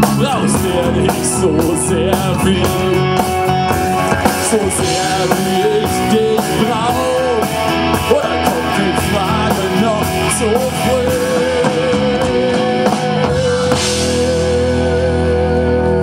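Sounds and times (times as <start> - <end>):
drum kit: 0.0 - 16.0
electric guitars: 0.0 - 16.0
man singing: 0.0 - 16.0.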